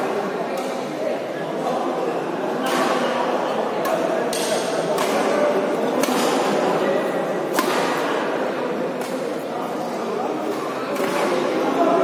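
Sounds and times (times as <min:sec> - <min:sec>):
large hall background noise: 0:00.0 - 0:12.0
racket hitting shuttlecock: 0:03.8 - 0:06.6, 0:07.5 - 0:08.2.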